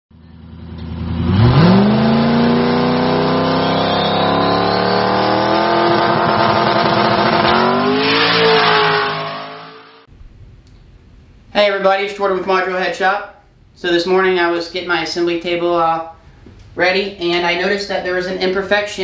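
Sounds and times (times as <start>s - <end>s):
car engine revving: 0.4s - 10.1s.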